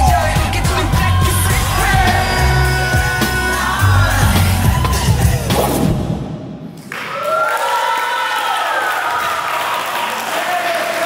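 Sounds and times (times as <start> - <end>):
music: 0.0 - 6.6
crowd clapping and cheering: 0.0 - 11.0.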